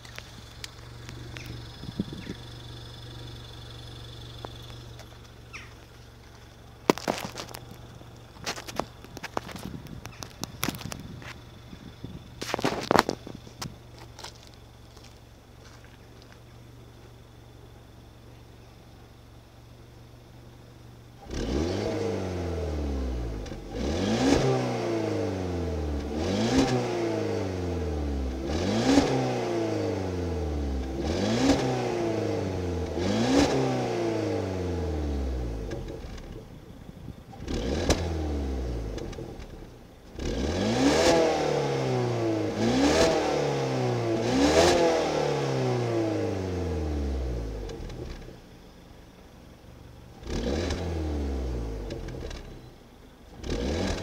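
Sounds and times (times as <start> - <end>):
car engine revving: 0.0 - 6.0, 21.2 - 36.6, 37.3 - 48.5, 50.0 - 52.7, 53.3 - 54.0.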